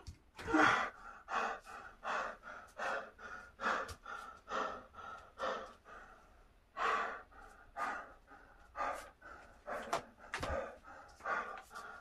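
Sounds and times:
man panting hard: 0.4 - 12.0.

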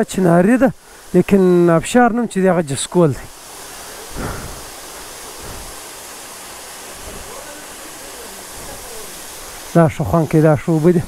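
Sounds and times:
waterfall rushing: 0.0 - 11.0.

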